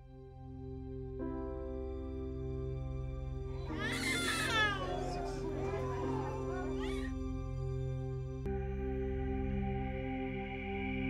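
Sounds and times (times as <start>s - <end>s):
soft ambient music: 0.0s - 11.0s
small child crying: 3.6s - 7.1s.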